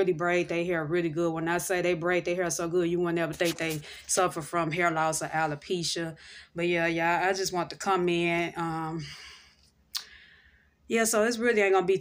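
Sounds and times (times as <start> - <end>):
mouth click: 9.9 - 10.1.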